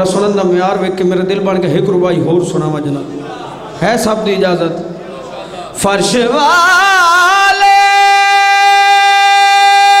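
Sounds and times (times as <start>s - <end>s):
man singing long high note: 6.1s - 10.0s.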